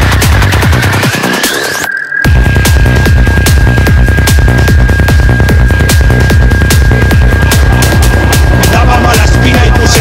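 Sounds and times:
electronic dance music: 0.0 - 10.0
kick drum pulsing: 2.3 - 10.0.

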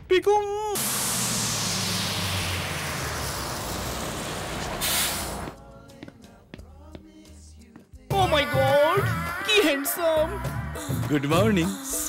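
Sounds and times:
loud hiss burst: 0.8 - 5.6
coach engine hum and road noise: 1.9 - 5.6.

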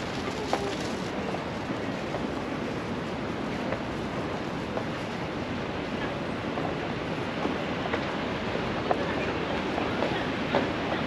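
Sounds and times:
footsteps on brick paving: 0.0 - 1.1
outdoor background noise: 0.0 - 11.0.

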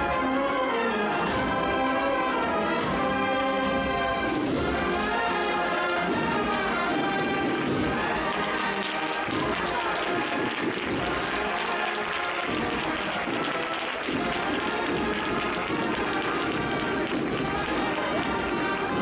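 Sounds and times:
brass band playing a march: 0.0 - 19.0
crowd voices: 0.0 - 19.0
crowd applause: 3.4 - 19.0.

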